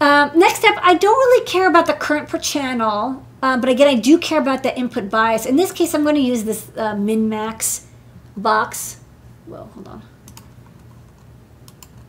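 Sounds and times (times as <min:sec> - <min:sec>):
keyboard and mouse clicks: 0:10.2 - 0:12.0.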